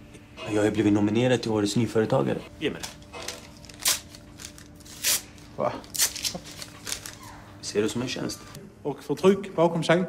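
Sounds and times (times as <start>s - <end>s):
paper rustling: 2.7s - 7.4s.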